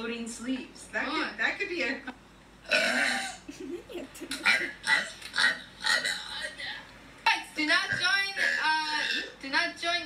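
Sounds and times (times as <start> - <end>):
girl burping: 2.6 - 3.5, 4.3 - 6.4, 8.4 - 9.4.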